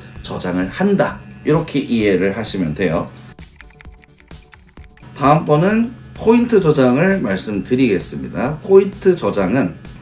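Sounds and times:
quiet background music: 0.0 - 10.0
keypad button clicks: 3.4 - 5.1.

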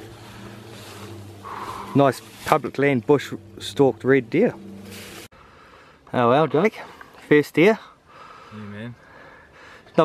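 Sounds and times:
soft rustle: 0.0 - 2.9, 4.8 - 5.3
steady low hum: 0.0 - 6.0.

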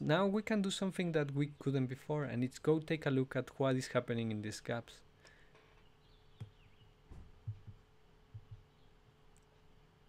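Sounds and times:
faint steady hum: 0.0 - 10.0
soft low knocks on desk: 7.1 - 8.7.

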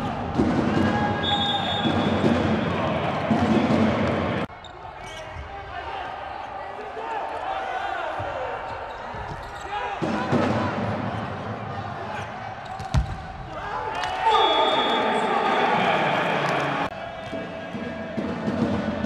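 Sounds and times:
voices and crowd noise: 0.0 - 19.0.

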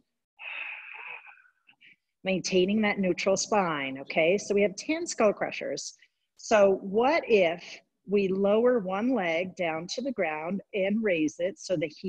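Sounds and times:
woman breathing through mouth: 0.4 - 2.0.

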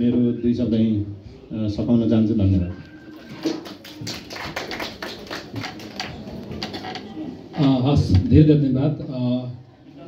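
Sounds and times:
hand clapping: 3.4 - 6.7.

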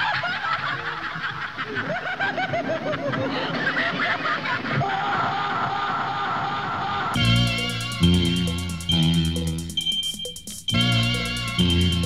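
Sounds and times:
techno music with chirps: 7.2 - 12.0.

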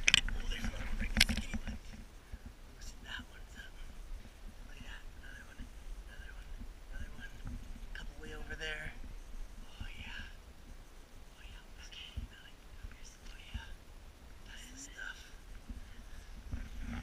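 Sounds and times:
soft whispering voices: 0.1 - 17.0.

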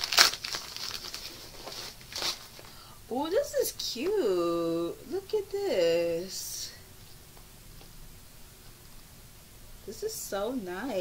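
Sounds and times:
plastic mailer crinkling: 0.0 - 2.8.

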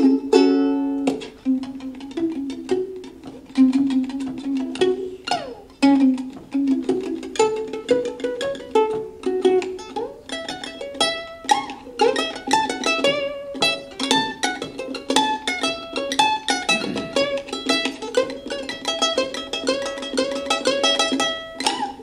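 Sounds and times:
ukulele playing: 0.0 - 22.0.

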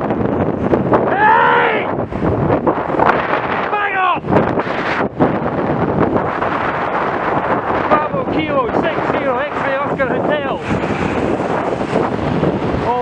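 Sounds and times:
wind buffeting microphone: 0.0 - 13.0
person speaking: 3.7 - 4.3, 12.8 - 13.0.

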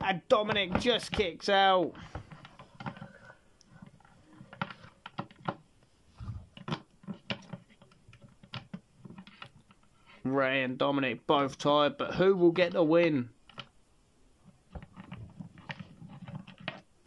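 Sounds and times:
plastic figures clicking and tapping: 0.0 - 5.7, 6.5 - 9.9, 13.4 - 13.7, 14.5 - 17.0.

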